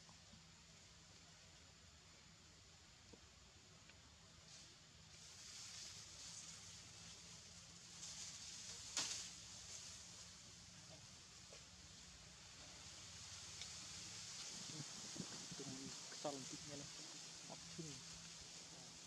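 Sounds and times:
soft high hiss: 0.0 - 19.0.

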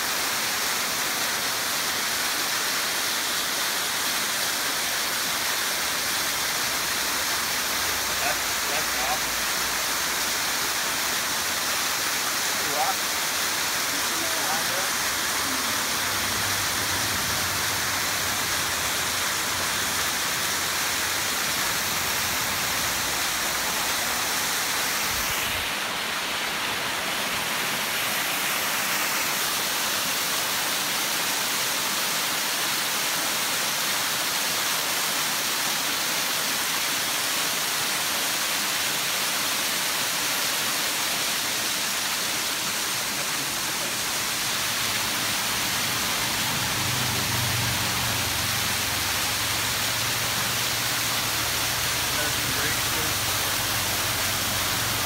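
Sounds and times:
waterfall rushing: 0.0 - 55.0.

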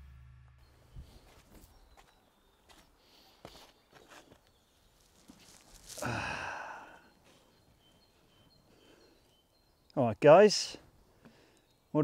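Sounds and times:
man sighing: 5.9 - 7.2.

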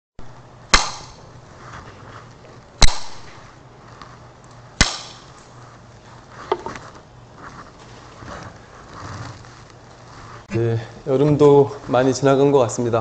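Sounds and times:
sharp wooden strikes ringing: 0.7 - 1.3, 2.8 - 3.4, 4.8 - 5.4.

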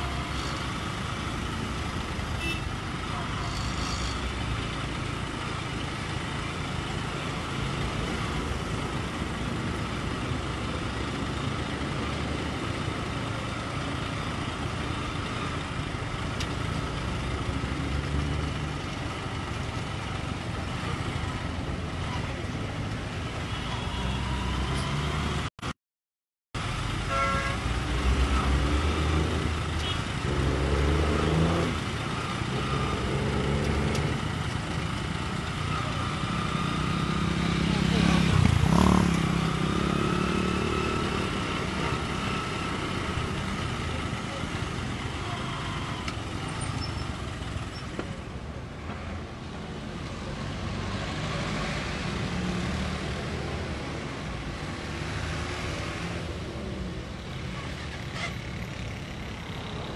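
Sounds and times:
cars and motorcycles passing: 0.0 - 25.5, 26.6 - 59.9.

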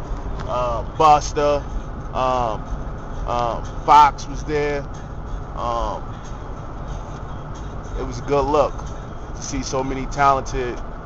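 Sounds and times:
road and engine rumble in van: 0.0 - 11.0.

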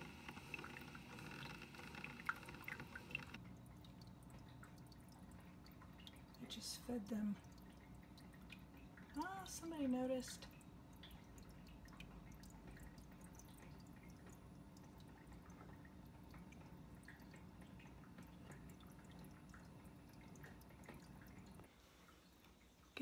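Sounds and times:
small irregular ticks: 0.0 - 3.4
aquarium filter hum: 0.0 - 23.0
water trickling and dripping: 0.0 - 23.0.

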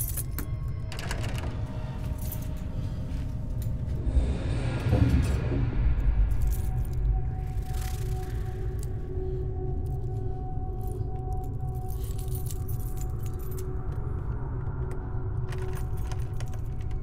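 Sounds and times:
keys jangling at door lock: 0.0 - 2.7, 11.3 - 14.0, 15.4 - 17.0
steady low drone: 0.0 - 16.9.

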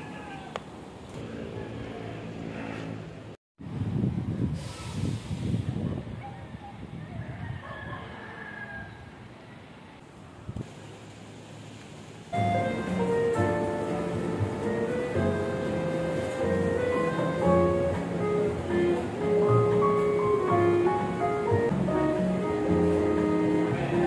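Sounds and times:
wind rumbling on microphone: 3.6 - 9.2
rooster crowing: 7.0 - 9.2.

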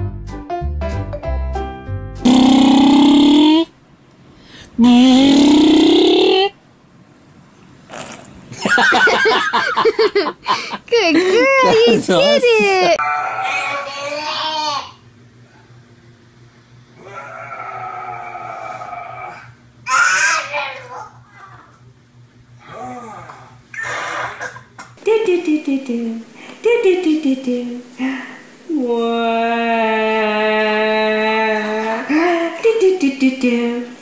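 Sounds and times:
baby squealing: 23.7 - 24.6.

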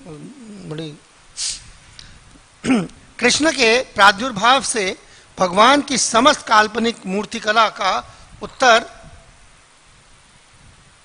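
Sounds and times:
man drawing out a word: 0.0 - 1.7
short hiss: 1.3 - 3.1.

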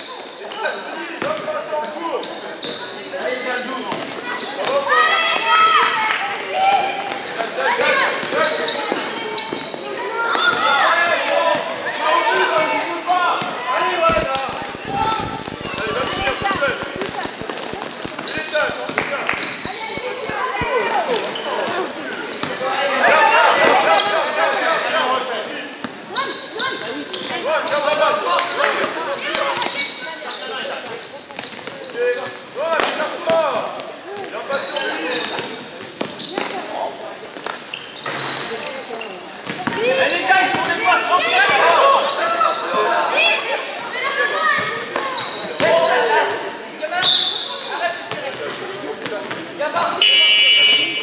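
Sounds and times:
players and coaches calling out: 0.0 - 51.0
basketball bouncing on gym floor: 13.4 - 20.9.

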